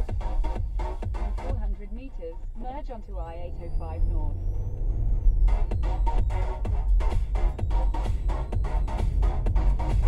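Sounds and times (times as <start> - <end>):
electronic dance music: 0.0 - 4.5, 5.2 - 10.0.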